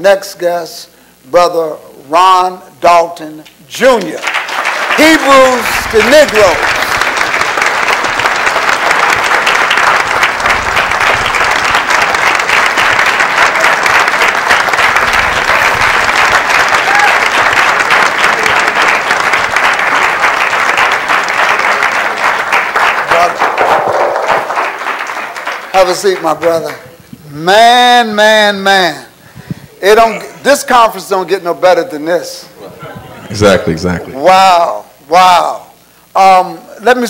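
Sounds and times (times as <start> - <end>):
audience applauding: 4.0 - 26.8.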